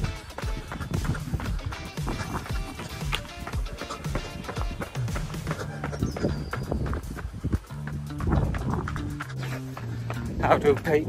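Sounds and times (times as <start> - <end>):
background music with bass and beat: 0.0 - 11.0.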